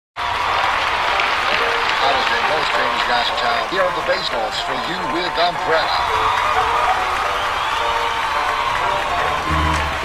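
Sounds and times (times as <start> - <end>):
audience applauding: 0.2 - 10.0.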